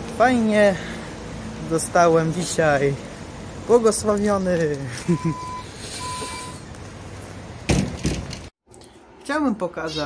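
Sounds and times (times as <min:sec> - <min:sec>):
street traffic hum: 0:00.0 - 0:10.0
reversing alarm beeping: 0:05.1 - 0:06.6.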